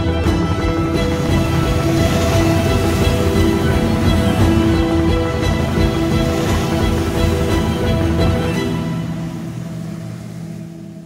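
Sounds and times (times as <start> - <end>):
motorboat engine drone: 0.0 - 11.0.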